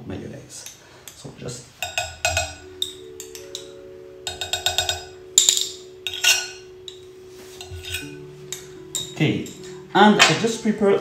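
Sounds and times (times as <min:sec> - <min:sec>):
soft background music: 0:01.4 - 0:11.0
spoon clinking on ceramic bowl: 0:01.8 - 0:10.4.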